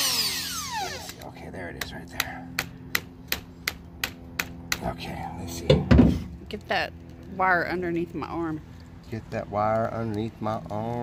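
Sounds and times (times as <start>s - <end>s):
drill clutch clicking: 0.0s - 1.2s.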